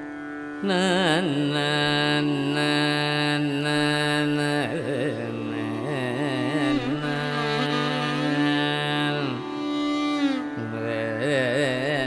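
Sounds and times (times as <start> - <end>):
violin accompaniment: 5.8 - 11.0.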